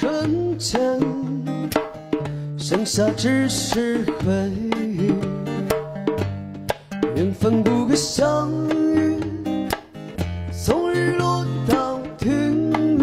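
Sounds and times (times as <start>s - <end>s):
person singing: 0.0s - 1.7s, 2.6s - 5.9s, 7.1s - 9.7s, 10.5s - 13.0s
acoustic guitar strumming: 0.0s - 13.0s.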